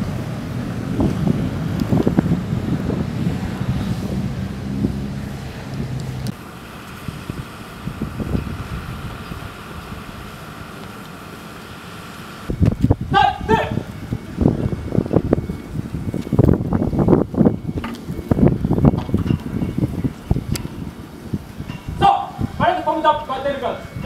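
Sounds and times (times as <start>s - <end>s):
pickup truck driving past: 0.0s - 10.7s
wind buffeting microphone: 0.0s - 11.0s, 12.4s - 24.0s
loud voice: 13.1s - 13.9s, 22.0s - 23.8s.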